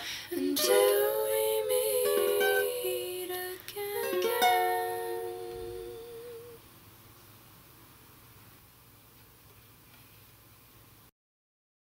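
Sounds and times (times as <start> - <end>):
faint room hiss: 0.0 - 11.1
ukulele chord ringing: 0.5 - 3.1, 3.9 - 6.6.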